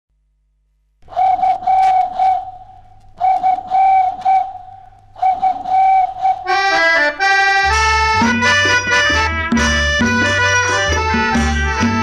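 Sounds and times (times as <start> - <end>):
low record hum: 0.1 - 12.0
whistle imitating dove cooing: 1.0 - 6.8.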